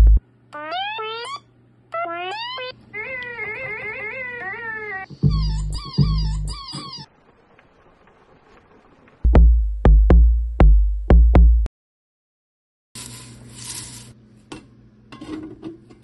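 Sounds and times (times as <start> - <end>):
bass drum thumps: 0.0 - 0.2, 9.3 - 11.7
squeaky electronic chirps: 0.6 - 1.5, 2.1 - 7.1.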